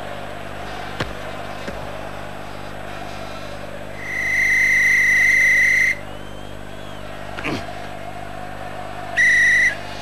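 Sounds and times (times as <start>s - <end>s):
referee's whistle blast: 4.0s - 7.1s, 9.2s - 9.8s.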